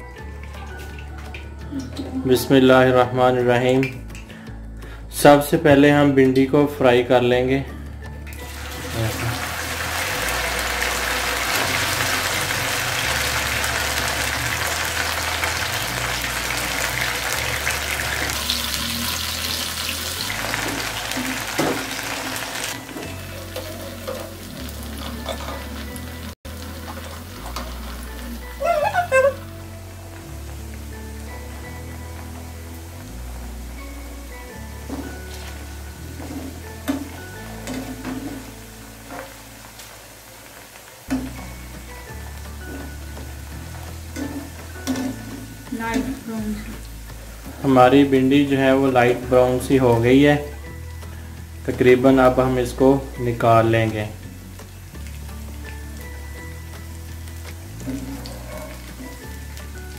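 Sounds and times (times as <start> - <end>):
background music with bass line: 0.0 - 40.4, 41.0 - 59.9
food sizzling in hot oil: 8.1 - 59.9.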